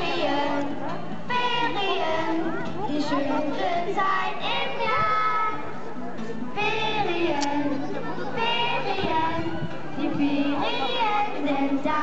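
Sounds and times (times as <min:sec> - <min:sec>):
children's choir singing: 0:00.0 - 0:05.7, 0:06.6 - 0:12.0.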